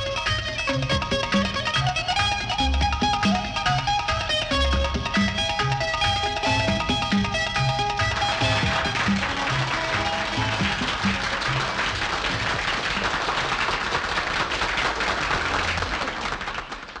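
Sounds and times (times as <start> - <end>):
band with bouzouki and accordion: 0.0 - 12.4
audience applause: 6.3 - 17.0.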